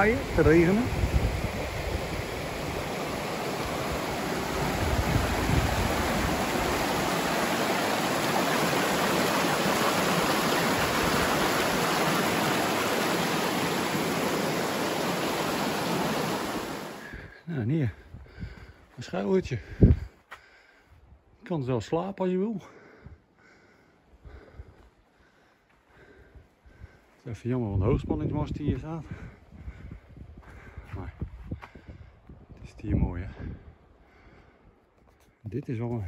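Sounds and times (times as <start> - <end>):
stream rushing over boulders: 0.0 - 17.2.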